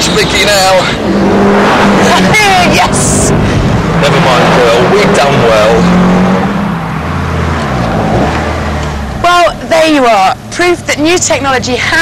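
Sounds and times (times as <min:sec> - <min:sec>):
racing car engines under load: 0:00.0 - 0:12.0.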